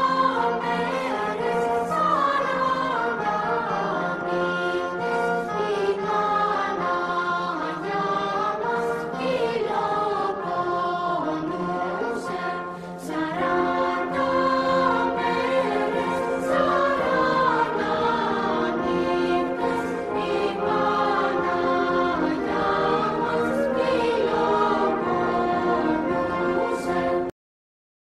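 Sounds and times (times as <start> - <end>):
group of voices singing: 0.0 - 27.3.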